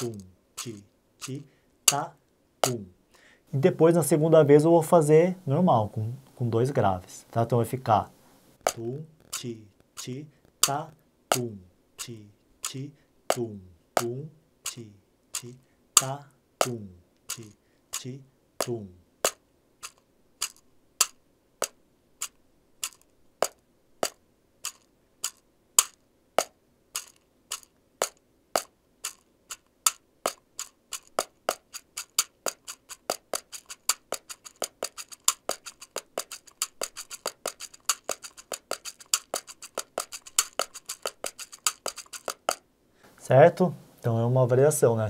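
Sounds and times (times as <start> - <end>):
box drum tapped with fingertips: 10.6 - 11.5, 25.8 - 28.7, 31.0 - 42.6.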